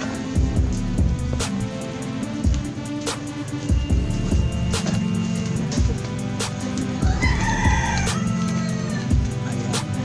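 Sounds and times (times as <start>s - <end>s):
rooster crowing: 6.9s - 9.7s.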